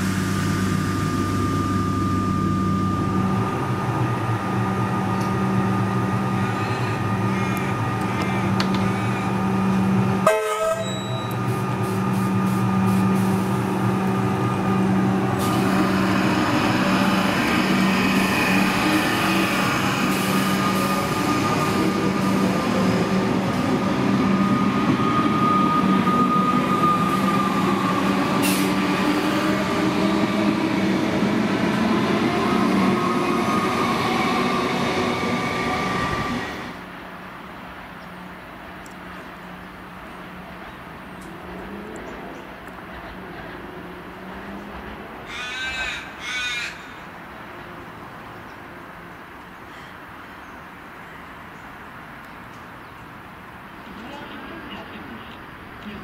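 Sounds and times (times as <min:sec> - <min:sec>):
electric train humming: 0:00.0 - 0:45.5.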